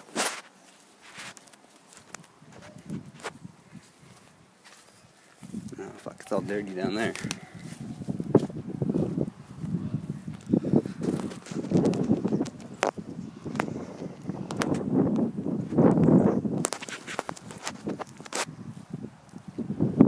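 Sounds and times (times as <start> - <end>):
footsteps on rough ground: 0.0 - 20.0
sharp clicks: 10.4 - 15.2.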